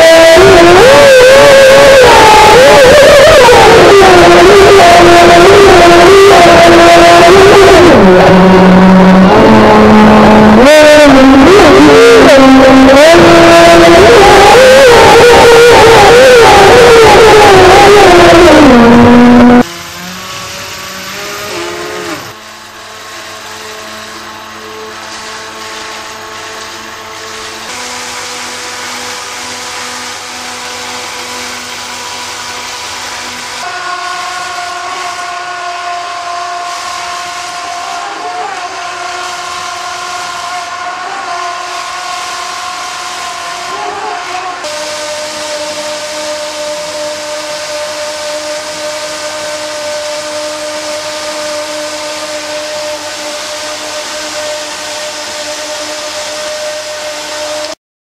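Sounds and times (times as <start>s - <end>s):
electric motors whining: 0.0s - 57.8s.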